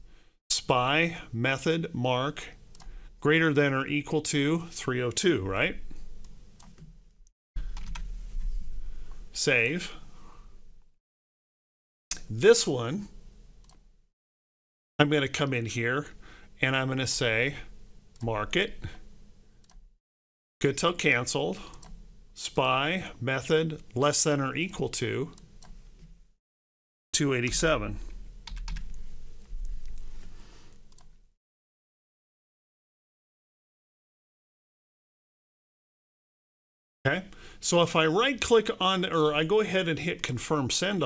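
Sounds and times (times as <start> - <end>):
low steady hum: 7.6 - 10.9
computer keyboard keys tapping: 7.7 - 8.1, 28.4 - 30.1.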